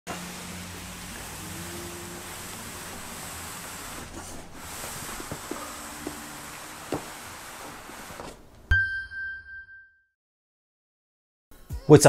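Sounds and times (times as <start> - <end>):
steady hiss: 0.1 - 8.5.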